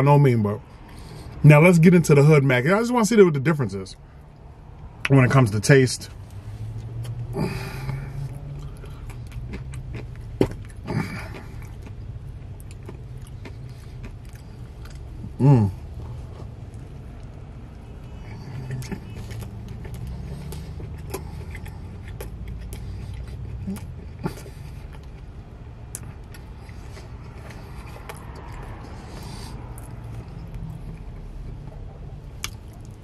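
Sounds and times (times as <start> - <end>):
man chewing food: 6.2 - 33.0.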